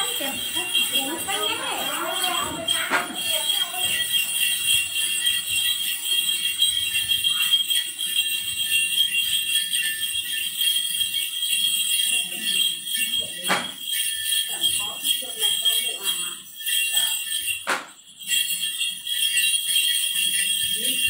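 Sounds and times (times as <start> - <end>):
small metal bells jingling: 0.0 - 21.0.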